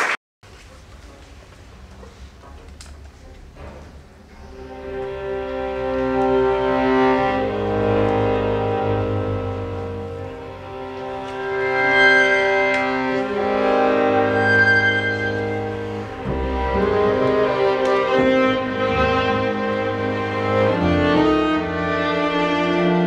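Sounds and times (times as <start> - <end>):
sustained low strings: 4.4 - 23.0
solo violin melody: 4.5 - 23.0.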